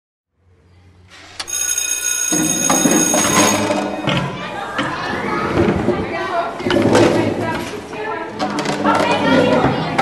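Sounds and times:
electric school bell ringing: 1.4s - 4.9s.

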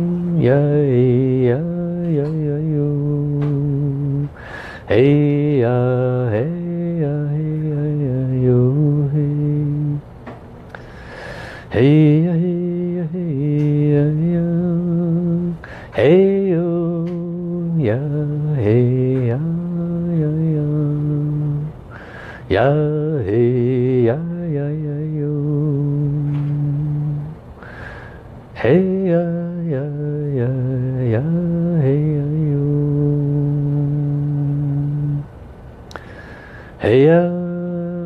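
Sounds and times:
man chanting: 0.0s - 10.0s, 11.7s - 21.8s, 22.5s - 27.4s, 28.6s - 35.3s, 36.8s - 38.0s.

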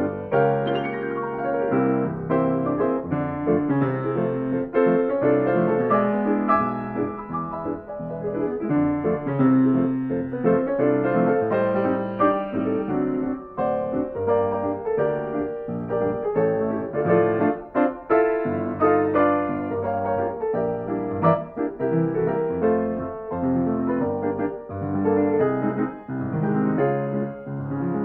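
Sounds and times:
piano playing fox-trot: 0.0s - 28.0s.

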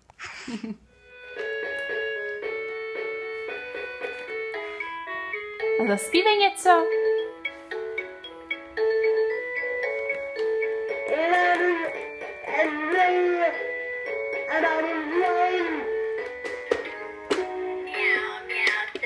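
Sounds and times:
toy keyboard electronic melody: 1.2s - 17.1s.

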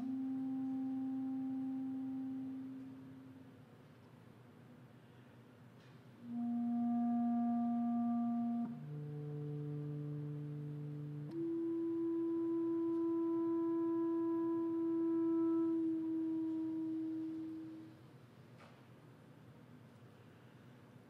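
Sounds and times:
clarinet holding soft notes: 0.0s - 4.0s, 5.8s - 18.3s.

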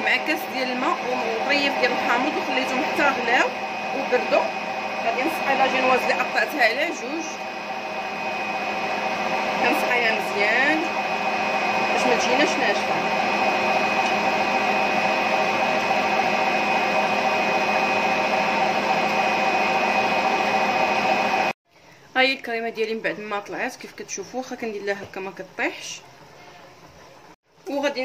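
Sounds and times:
electric mixer whining: 0.0s - 21.6s.

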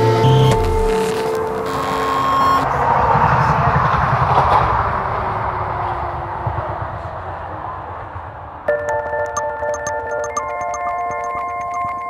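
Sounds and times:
experimental electronic music: 0.0s - 2.6s, 8.7s - 12.0s
held electronic tones: 8.7s - 12.0s.

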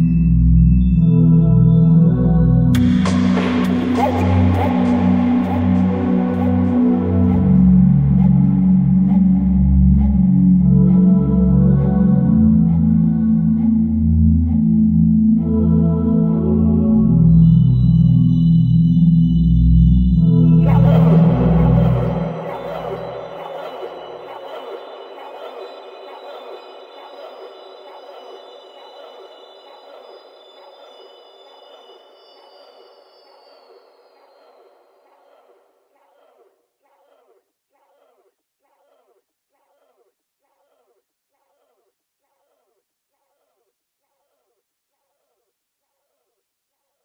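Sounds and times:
sustained synth chords: 0.0s - 32.8s
wavering echoed pulse: 0.0s - 46.3s.

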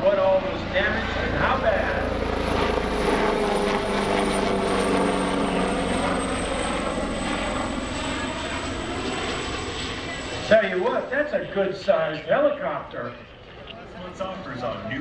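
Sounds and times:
helicopter flying past: 0.0s - 15.0s.

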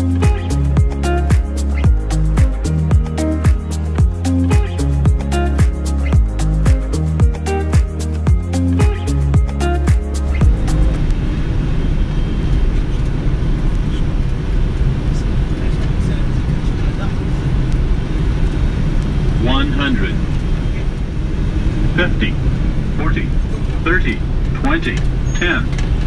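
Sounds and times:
airflow and engine rumble: 0.0s - 26.0s.

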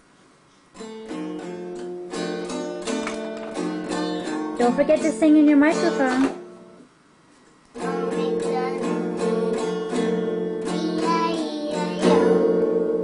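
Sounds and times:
acoustic guitar strumming: 0.8s - 6.8s, 7.8s - 13.0s
child singing: 3.5s - 5.9s, 7.8s - 9.6s, 10.6s - 12.8s.

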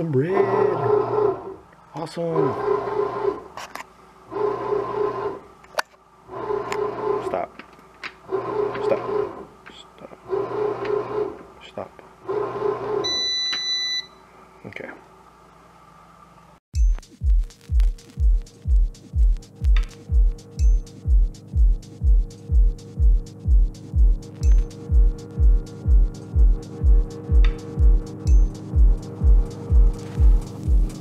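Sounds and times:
bread maker motor pulsing: 0.0s - 3.6s, 4.3s - 5.6s, 6.2s - 13.4s
machine beep: 13.0s - 14.2s
background music with steady beat: 16.8s - 31.0s.

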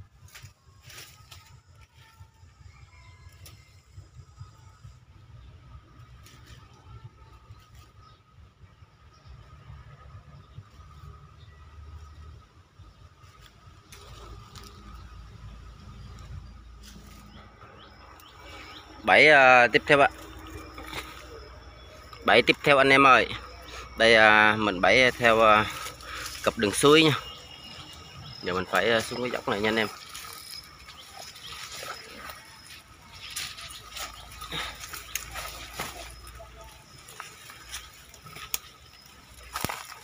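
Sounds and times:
low rumble: 3.6s - 39.6s.

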